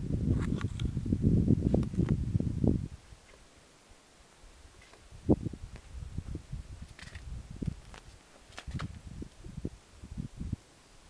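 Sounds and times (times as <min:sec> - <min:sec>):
wind buffeting microphone: 0:00.0 - 0:03.2, 0:05.0 - 0:10.6.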